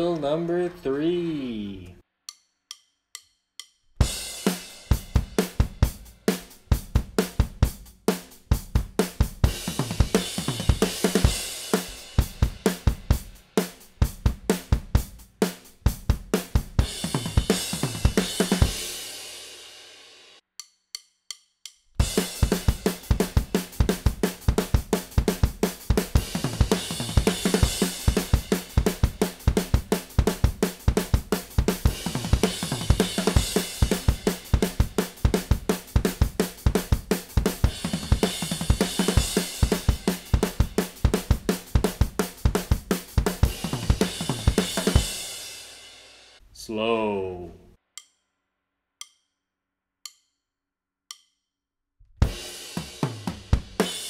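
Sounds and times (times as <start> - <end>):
drum kit playing punk beat: 0.0 - 2.0, 4.0 - 20.1, 22.0 - 46.2, 52.2 - 54.0.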